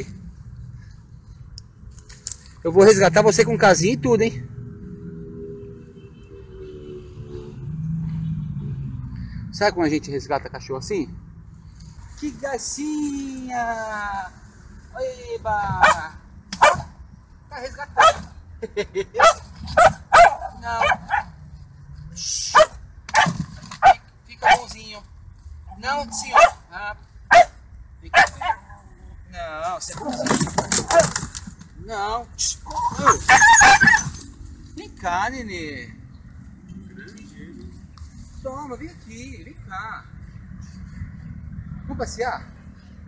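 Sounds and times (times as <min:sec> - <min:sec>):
vehicle engine rumbling: 0:00.0 - 0:43.0
small dog barking sharply: 0:15.8 - 0:16.9, 0:18.0 - 0:18.3, 0:19.2 - 0:21.3, 0:22.6 - 0:24.7, 0:26.3 - 0:26.6, 0:27.3 - 0:27.6, 0:28.2 - 0:28.6.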